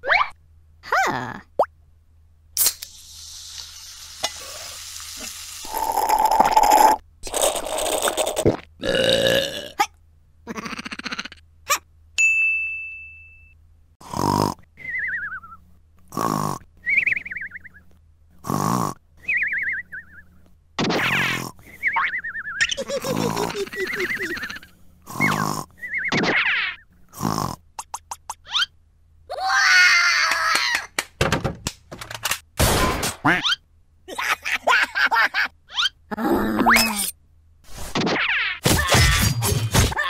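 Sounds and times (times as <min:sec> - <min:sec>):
cartoon grunts and burps: 0:05.7 - 0:11.8, 0:14.0 - 0:14.7, 0:22.8 - 0:26.3, 0:36.1 - 0:37.2
ringing ding: 0:12.2 - 0:13.6.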